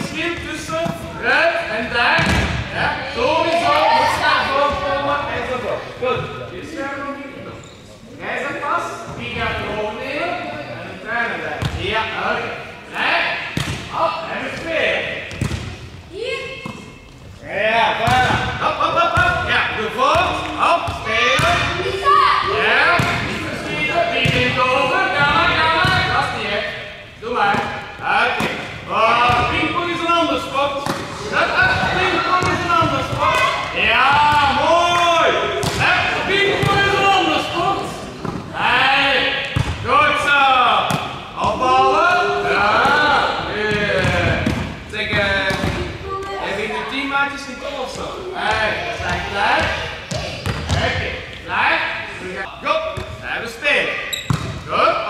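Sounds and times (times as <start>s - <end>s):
volleyball thuds: 2.1s - 2.7s, 15.2s - 15.8s, 35.5s - 37.0s, 43.7s - 46.0s
young voices shouting: 2.8s - 5.6s, 21.6s - 23.8s, 41.4s - 44.4s.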